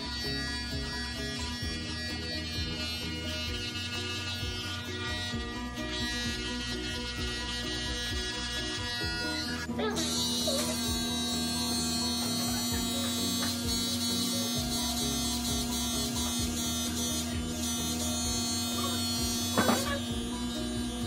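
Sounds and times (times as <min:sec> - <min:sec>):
background music: 0:00.0 - 0:21.0
electric hair clippers buzzing: 0:00.0 - 0:21.0.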